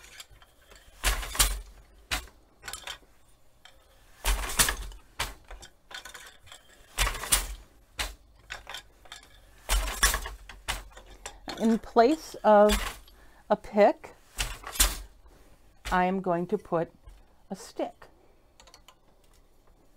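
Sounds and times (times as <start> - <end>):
wooden loom clacking: 0.0 - 15.2, 15.8 - 18.0.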